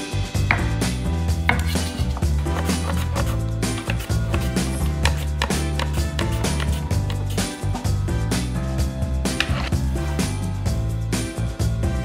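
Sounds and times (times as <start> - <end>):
background music: 0.0 - 12.0
knife cutting on a cutting board: 1.4 - 7.3.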